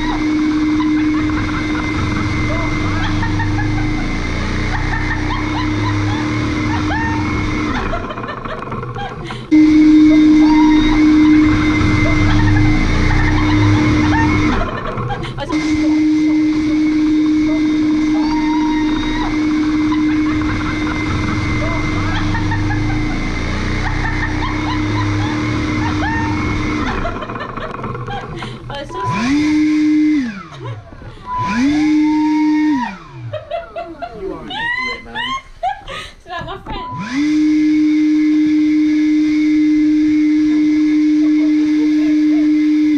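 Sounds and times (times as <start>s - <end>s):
leaf blower whining: 0.0s - 42.9s.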